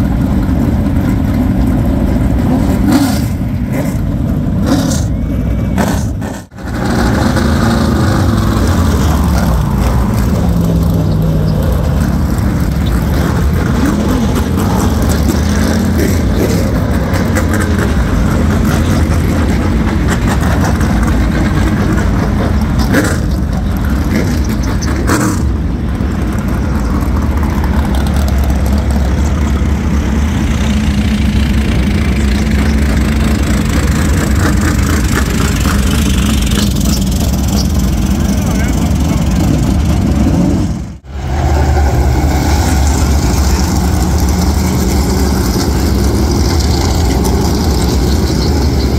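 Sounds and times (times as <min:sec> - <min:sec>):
race car engines passing: 0:00.0 - 0:48.9.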